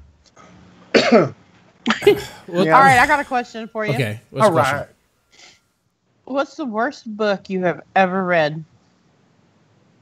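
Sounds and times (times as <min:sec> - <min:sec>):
person coughing: 0:01.0 - 0:01.3, 0:01.9 - 0:03.2
person laughing: 0:01.9 - 0:03.3.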